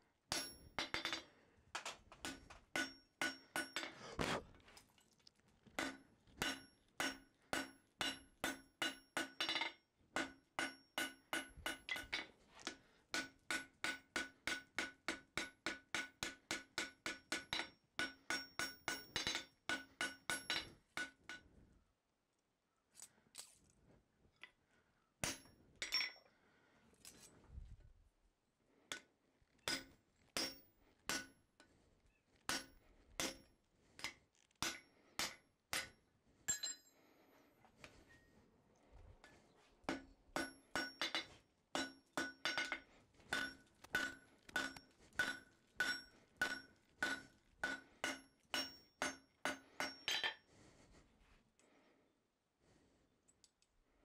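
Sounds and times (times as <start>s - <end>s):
hammer blows ringing on anvil: 2.8s - 3.8s, 5.8s - 12.2s, 13.2s - 21.1s, 39.9s - 50.3s.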